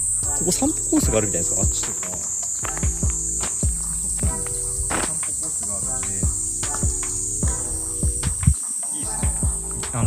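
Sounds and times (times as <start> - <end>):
background music with kick drum: 0.0 - 10.0
cicadas droning: 0.0 - 10.0.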